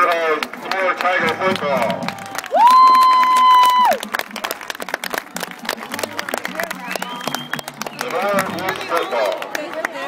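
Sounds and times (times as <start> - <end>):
crowd applauding: 0.0 - 10.0
loud long whoop: 2.2 - 4.0.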